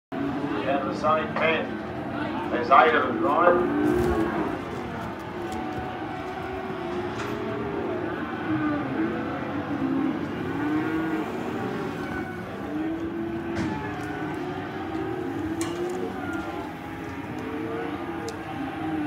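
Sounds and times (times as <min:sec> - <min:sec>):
cattle mooing and bellowing: 0:03.5 - 0:19.0.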